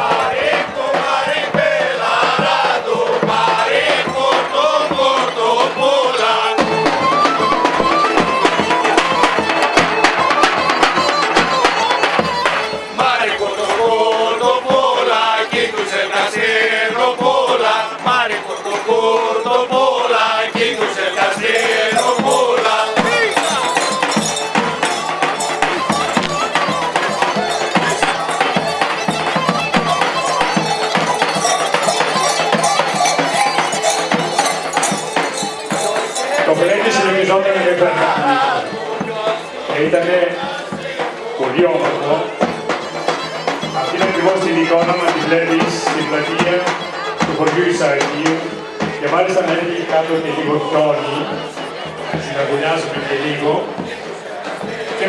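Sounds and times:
group of voices singing folk music: 0.0s - 55.0s
street crowd noise: 0.0s - 55.0s.

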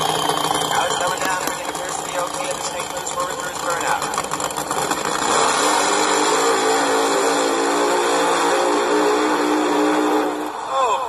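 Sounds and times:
recorded racing engine revving: 0.0s - 10.6s.

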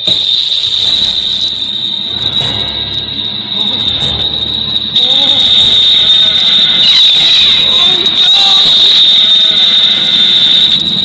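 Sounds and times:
high-pitched whine: 0.0s - 11.0s.

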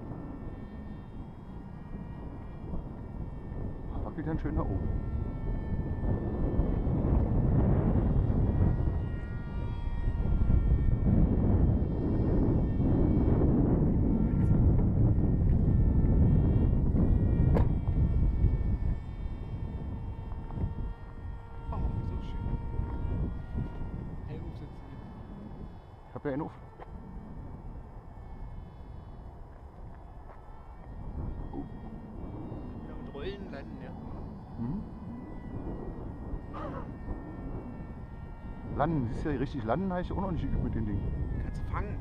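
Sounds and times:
model aircraft motor whine: 0.0s - 42.0s
wind buffeting microphone: 0.0s - 42.0s.

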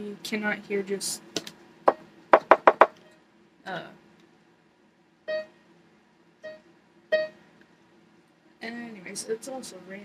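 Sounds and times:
electronic keyboard note: 6.4s - 7.4s.

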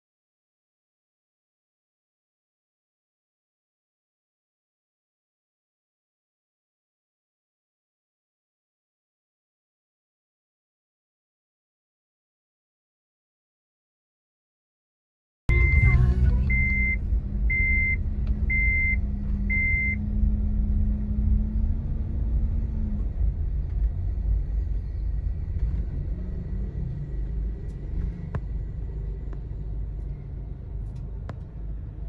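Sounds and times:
high electronic beep: 15.5s - 20.0s
engine humming: 15.5s - 32.0s
traffic rumble: 15.5s - 32.0s.

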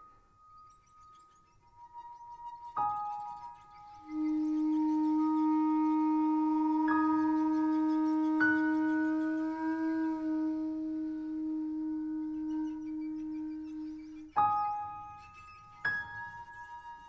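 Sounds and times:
piano notes ringing: 0.0s - 17.0s
wooden flute long low note: 1.9s - 15.2s.

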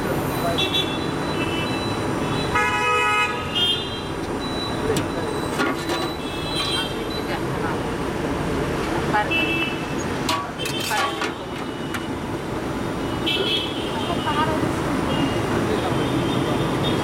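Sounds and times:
traffic: 0.0s - 17.0s
vehicle horn honking: 2.5s - 4.1s
people talking: 4.7s - 8.0s, 8.8s - 9.6s, 10.2s - 11.8s, 13.9s - 17.0s.

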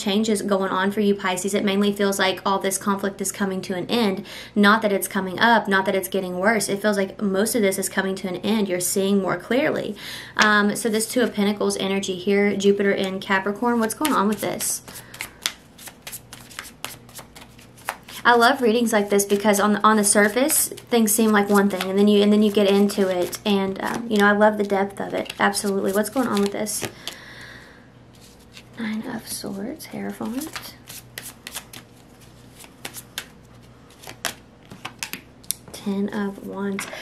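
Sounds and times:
cards being shuffled: 13.7s - 24.4s, 25.0s - 27.2s, 28.1s - 28.8s, 30.2s - 35.6s.

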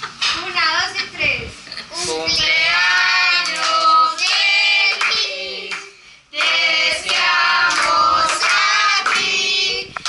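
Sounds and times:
child and women singing: 2.4s - 10.0s
hand clapping: 3.4s - 9.4s.

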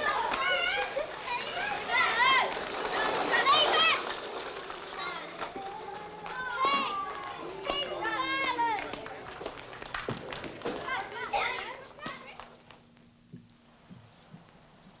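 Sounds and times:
children shouting at play: 0.0s - 4.2s, 4.9s - 9.0s.

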